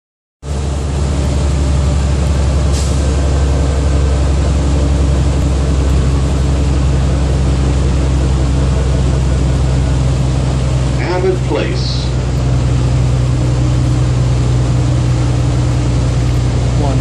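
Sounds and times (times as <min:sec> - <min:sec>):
bus engine drone: 0:00.4 - 0:17.0
road noise: 0:00.4 - 0:17.0.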